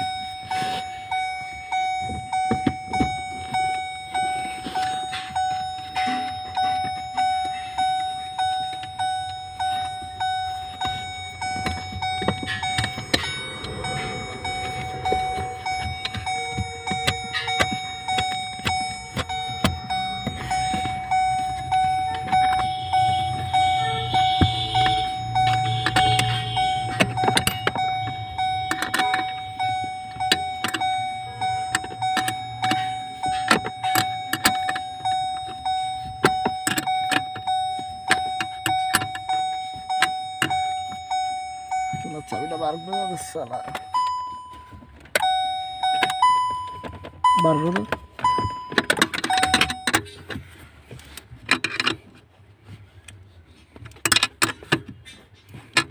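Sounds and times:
car warning chime: 0.0 - 55.9.

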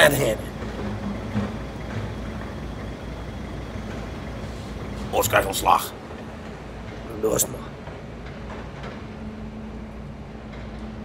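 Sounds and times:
steady low rumble: 0.0 - 8.0.

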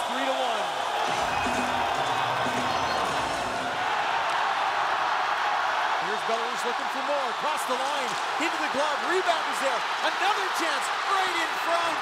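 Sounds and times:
arena crowd noise: 0.0 - 12.0
music playing: 1.0 - 3.9.

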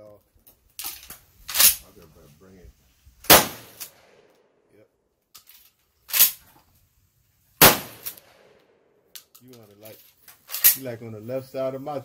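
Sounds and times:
shotgun shots with ringing tail: 3.3 - 4.2, 7.6 - 8.6.

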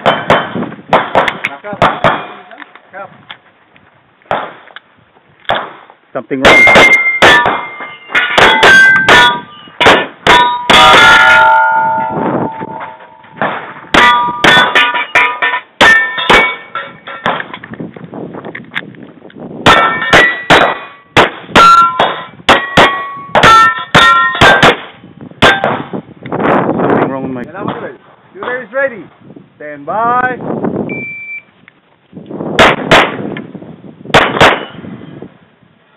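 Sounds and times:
gunshots: 0.0 - 2.4, 4.3 - 4.7, 5.5 - 11.5, 19.6 - 25.9, 32.6 - 33.3, 34.1 - 34.8
steel plate ringing: 6.4 - 17.4, 19.7 - 24.8.

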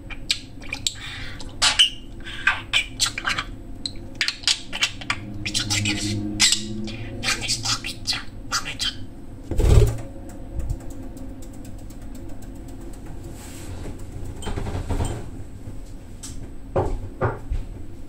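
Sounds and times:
budgerigar chirping: 4.2 - 9.0.

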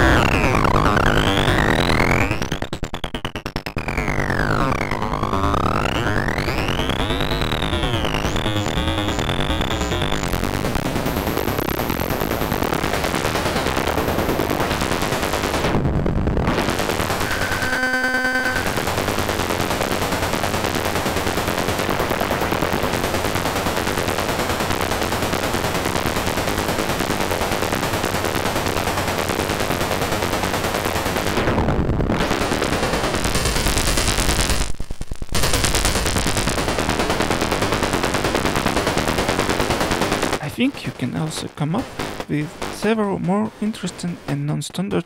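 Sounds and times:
gritty synth noise texture: 0.0 - 22.9
short buzzy pitched tone: 17.2 - 18.9.

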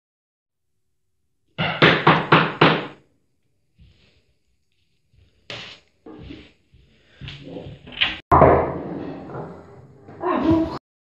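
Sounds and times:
loud knocking on door: 1.6 - 3.0.

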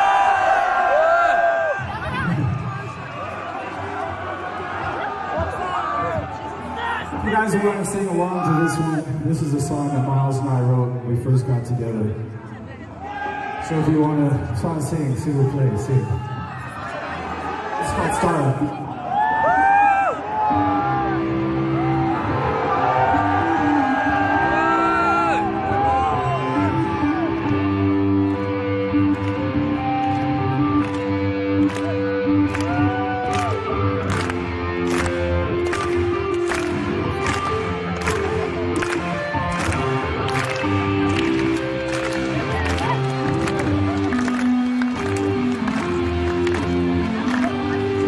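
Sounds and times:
crowd shouting and whooping: 0.0 - 9.1, 12.9 - 14.2, 15.6 - 28.6, 30.8 - 48.0
electric guitar notes: 20.5 - 48.0.

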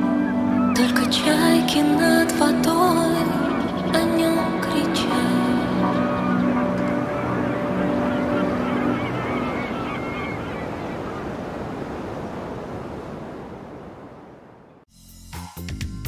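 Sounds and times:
sea surf: 0.0 - 14.8
seagull cries: 3.2 - 11.4.

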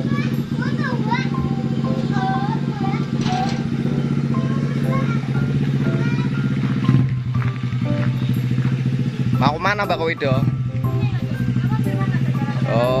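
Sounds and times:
small motorbike engine idling: 0.0 - 13.0.

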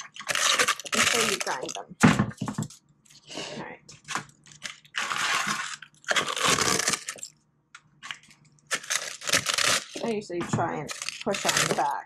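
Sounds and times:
eggshells crackling and crunching: 0.0 - 2.0, 3.9 - 7.4, 8.0 - 12.0.

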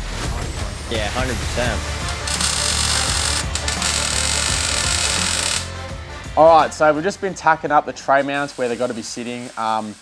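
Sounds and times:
background music: 0.0 - 10.0
welding arc crackling and hissing: 0.8 - 5.7, 8.0 - 10.0.

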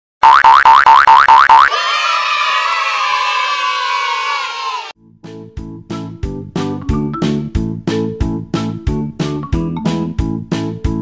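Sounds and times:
cartoon boing sound effects: 0.2 - 1.7.

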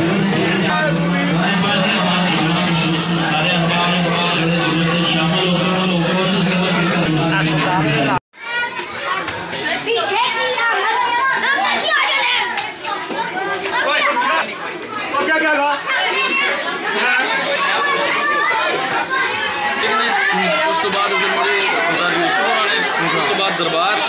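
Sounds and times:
children talking and calling out: 0.0 - 24.0.

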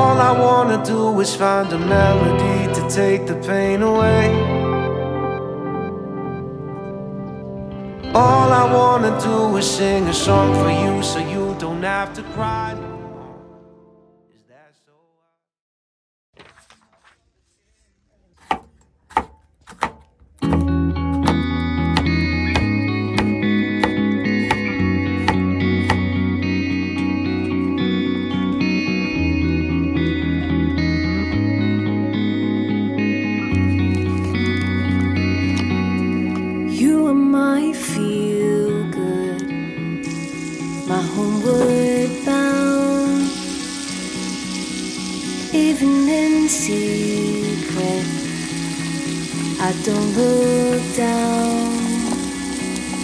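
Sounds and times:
guitar music: 0.0 - 14.3, 20.4 - 53.0
knife chopping on wooden board: 18.4 - 21.4
butter sizzling on griddle: 40.0 - 53.0.

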